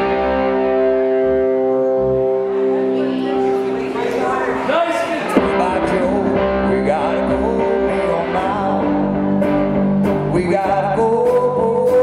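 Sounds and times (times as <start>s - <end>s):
pulsing bass notes: 5.3s - 12.0s.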